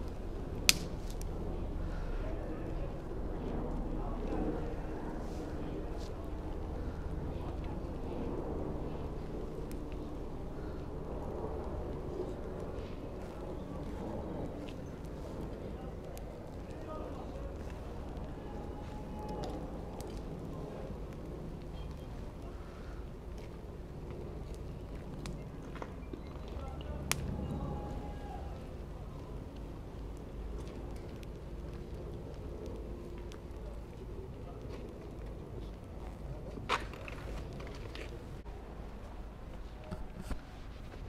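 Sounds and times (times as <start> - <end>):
faint voices murmuring: 0.0 - 41.0.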